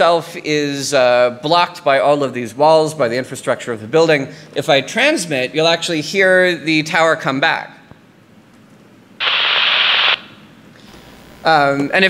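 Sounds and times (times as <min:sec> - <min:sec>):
radio static hiss: 0:09.2 - 0:11.8.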